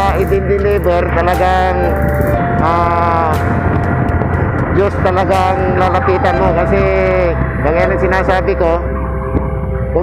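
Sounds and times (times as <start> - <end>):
motorcycle engine rumble: 0.0 - 10.0
wind on microphone: 0.0 - 10.0.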